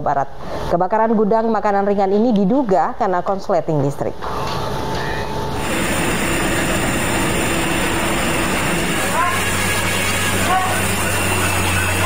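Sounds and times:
fire rushing noise: 5.6s - 12.0s
raised voices calling out: 10.2s - 11.3s.

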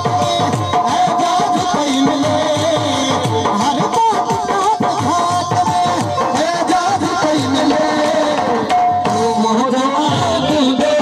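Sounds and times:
hand drum rhythm: 0.0s - 11.0s.

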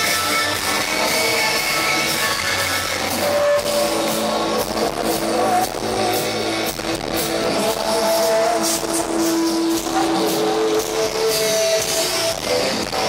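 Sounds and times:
drums and cymbals: 0.0s - 13.0s
electric guitars with held notes: 0.0s - 13.0s.

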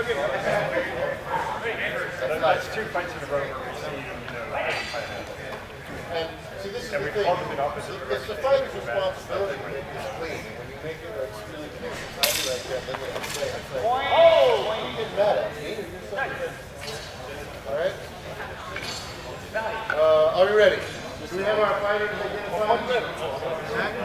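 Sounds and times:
people talking indistinctly: 0.0s - 24.0s.

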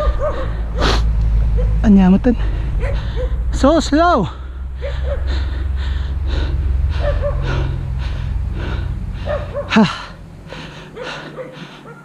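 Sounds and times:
bike tyre rumble: 0.0s - 11.9s
wind: 0.0s - 12.0s
person panting hard: 2.4s - 3.5s, 4.4s - 12.0s.

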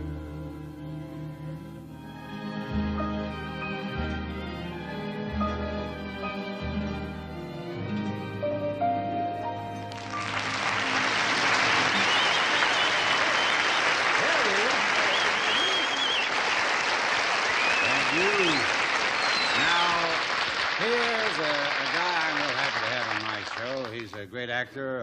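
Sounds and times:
audience applauding: 9.8s - 24.3s
whistles from audience: 11.1s - 20.2s.

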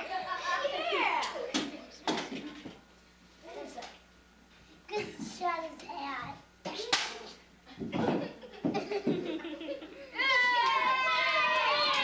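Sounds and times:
children talking and laughing: 0.0s - 4.0s, 4.8s - 12.0s.

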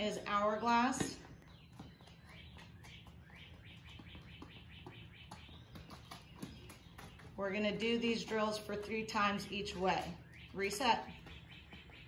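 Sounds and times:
bird chirping: 0.0s - 12.0s
footfalls on concrete: 0.0s - 12.0s.

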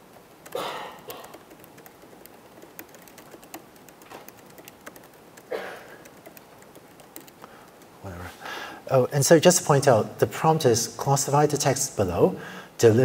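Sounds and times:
laptop keyboard typing: 0.0s - 8.2s.

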